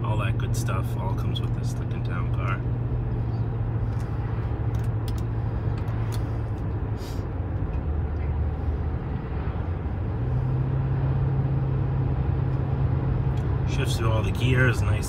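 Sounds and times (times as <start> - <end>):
car engine accelerating: 0.0 - 15.0
tyre and road noise: 0.0 - 15.0.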